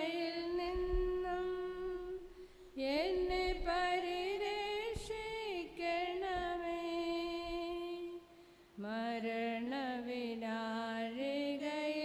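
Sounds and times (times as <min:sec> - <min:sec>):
person singing a hymn: 0:00.0 - 0:12.0.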